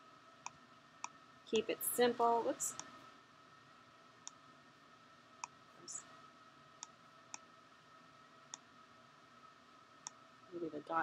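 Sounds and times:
faint steady hum: 0:00.0 - 0:11.0
computer mouse clicks: 0:02.7 - 0:02.9.

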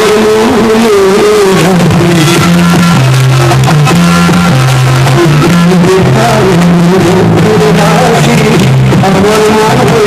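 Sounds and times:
bass stepping between notes: 0:01.2 - 0:10.0.

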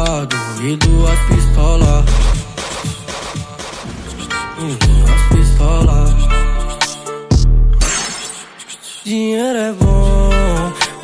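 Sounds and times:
short bass hit: 0:00.8 - 0:02.4, 0:04.8 - 0:06.4.

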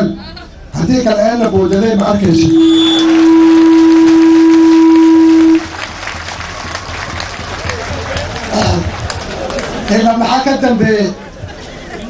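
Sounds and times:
background noise: 0:00.0 - 0:12.0
microphone feedback tone: 0:01.6 - 0:05.7.

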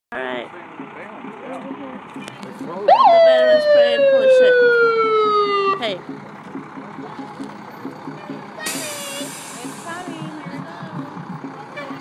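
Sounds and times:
truck engine running: 0:00.1 - 0:12.0
air brakes hissing: 0:08.6 - 0:10.2.

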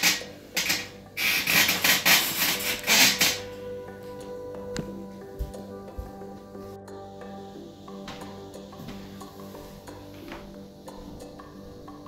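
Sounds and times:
rubbing and scraping noises: 0:00.0 - 0:03.6
background music with held notes: 0:00.0 - 0:12.0.

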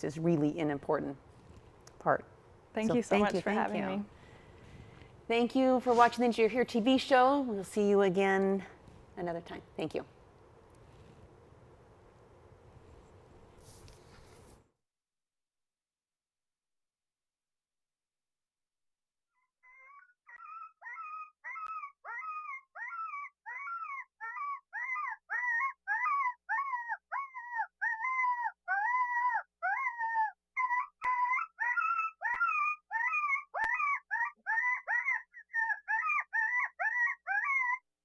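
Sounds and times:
coyote yipping: 0:19.6 - 0:37.8.

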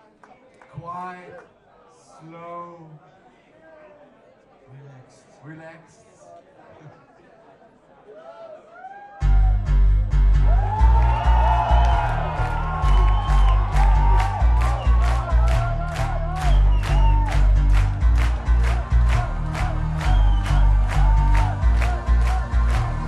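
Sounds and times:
crowd cheering: 0:08.0 - 0:23.0
pulsing synth bass: 0:09.2 - 0:23.0.

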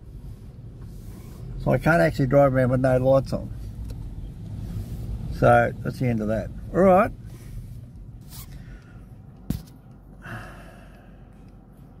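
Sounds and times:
low steady rumble: 0:00.0 - 0:12.0
breath: 0:08.5 - 0:09.2, 0:10.2 - 0:11.5.

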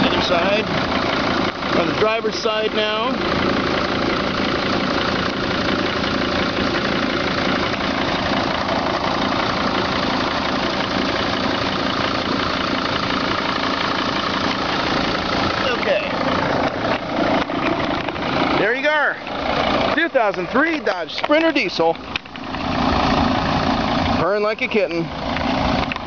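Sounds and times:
diesel van engine idling: 0:00.0 - 0:26.0.

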